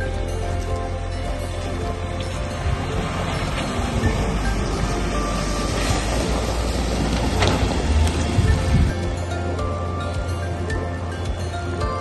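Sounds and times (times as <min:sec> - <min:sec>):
background music: 0:00.0 - 0:12.0
car engine running: 0:00.0 - 0:12.0
tyres splashing through water: 0:00.0 - 0:12.0.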